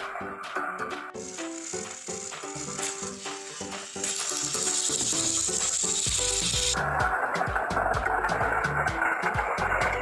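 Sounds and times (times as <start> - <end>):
upbeat background music: 0.0 - 10.0
toy train motor whirring: 1.1 - 6.9.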